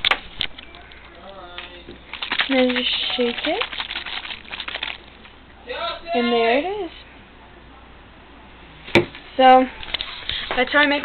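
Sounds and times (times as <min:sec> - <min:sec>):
plastic bottle shaken rattling: 0:00.6 - 0:05.3
woman speaking: 0:02.5 - 0:03.7, 0:06.2 - 0:07.0, 0:10.5 - 0:11.0.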